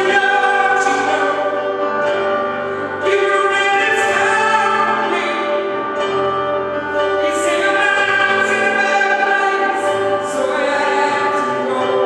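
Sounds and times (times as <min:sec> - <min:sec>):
keyboard accompaniment: 0:00.0 - 0:12.0.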